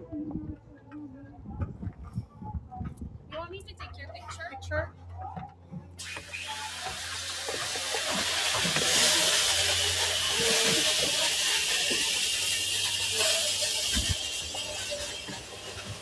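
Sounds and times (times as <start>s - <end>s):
loud steady hiss: 6.0s - 16.0s.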